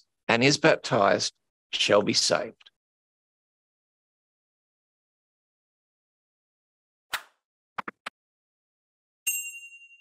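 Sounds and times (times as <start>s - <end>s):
bright bell-like ding: 9.3s - 10.0s.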